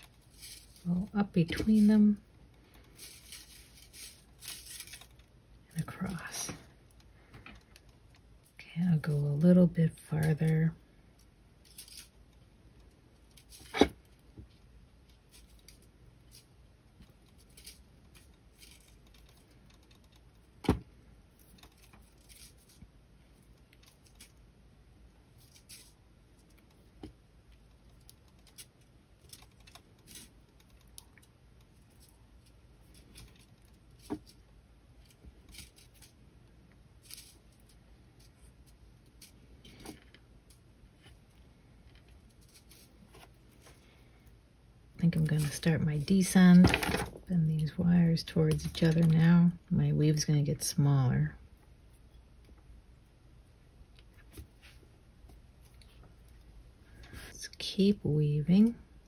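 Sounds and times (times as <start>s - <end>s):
wire scratching and ticking: 11.6s - 24.5s, 25.3s - 43.9s.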